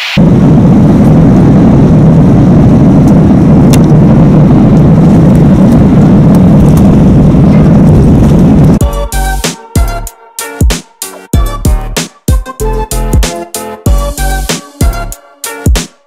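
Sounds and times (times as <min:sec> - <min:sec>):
jet engines rumbling: 0:00.0 - 0:15.6.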